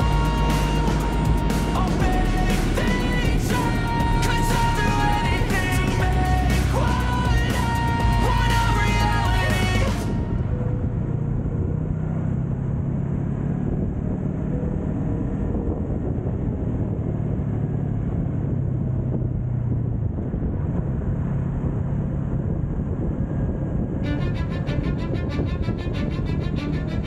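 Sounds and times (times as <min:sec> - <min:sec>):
motorcycle engine running: 0:00.0 - 0:27.0
road noise: 0:00.0 - 0:27.0.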